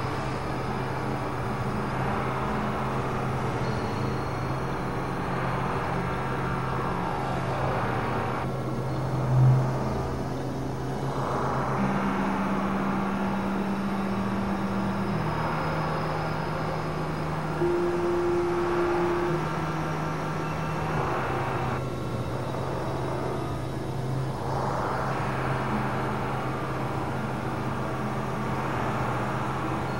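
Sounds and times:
low synthesizer drone tones: 0:00.0 - 0:29.9
rushing noise wash: 0:00.0 - 0:29.9.

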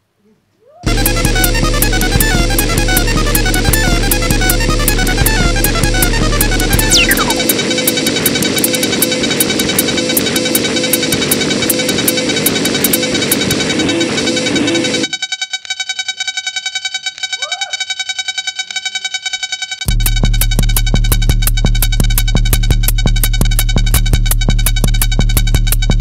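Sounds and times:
electronic dance music on synthesizer: 0:06.0 - 0:07.5.

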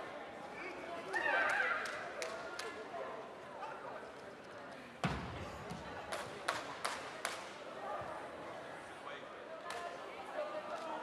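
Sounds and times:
voices echoing in hall: 0:00.0 - 0:11.0.

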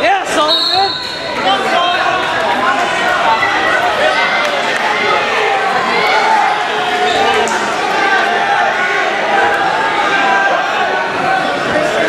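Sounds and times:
people shouting: 0:00.7 - 0:12.0.

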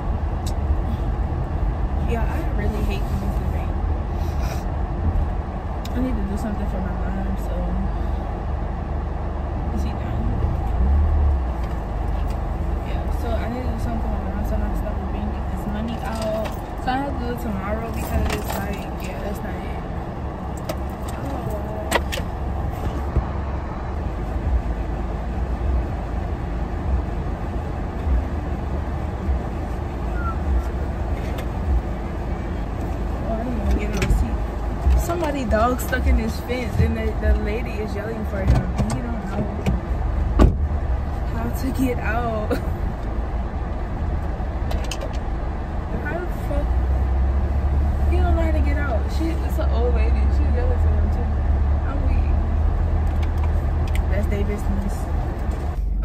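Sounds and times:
car cabin rumble: 0:00.0 - 0:56.0.

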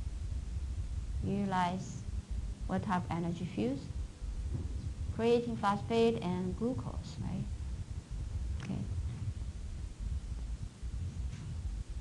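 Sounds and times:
low uneven rumble: 0:00.0 - 0:12.0.

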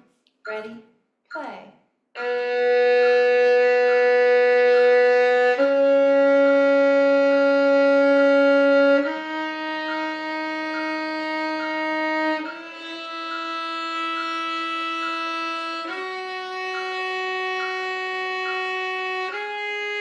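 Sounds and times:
violin playing long bowed notes: 0:02.2 - 0:20.0.

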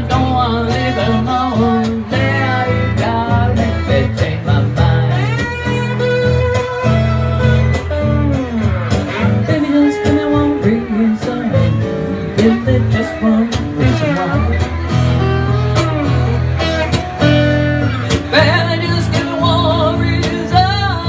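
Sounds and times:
slide guitar lead: 0:00.0 - 0:21.0
strummed acoustic guitar: 0:00.0 - 0:21.0.

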